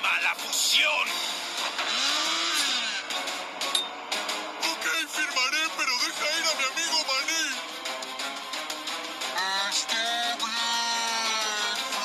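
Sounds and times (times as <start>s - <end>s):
music: 0.0s - 12.0s
cartoon machine grinding whir: 1.7s - 3.1s.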